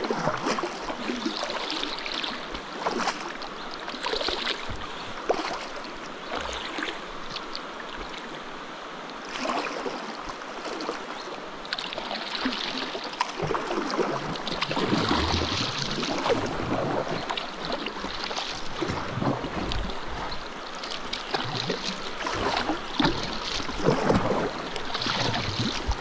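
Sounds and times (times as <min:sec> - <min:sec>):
paddle strokes splashing: 0:00.0 - 0:26.0.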